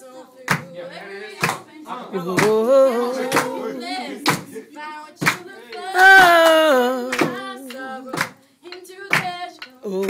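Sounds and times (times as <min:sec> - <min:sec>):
hand claps on a steady beat: 0:00.4 - 0:01.7, 0:02.3 - 0:03.6, 0:04.2 - 0:04.6, 0:05.2 - 0:10.0
person singing wavering notes: 0:05.9 - 0:08.0.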